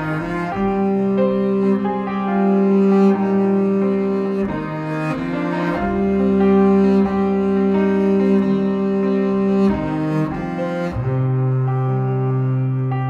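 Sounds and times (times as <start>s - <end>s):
double bass: 0.0s - 13.0s.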